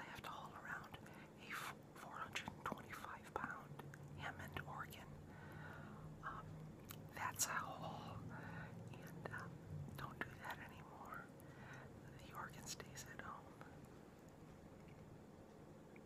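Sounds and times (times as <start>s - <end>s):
person whispering: 0.0s - 5.2s, 6.2s - 8.2s, 8.9s - 11.3s, 12.0s - 13.8s
faint low hum: 0.0s - 16.0s.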